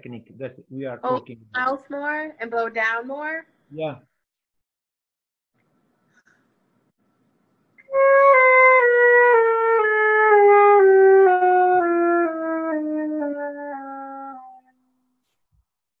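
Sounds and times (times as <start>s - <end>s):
flute playing descending scale: 7.8s - 14.7s.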